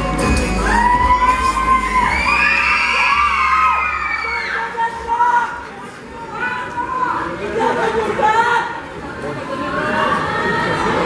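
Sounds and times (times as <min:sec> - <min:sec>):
crowd screaming and cheering: 0:00.0 - 0:07.4.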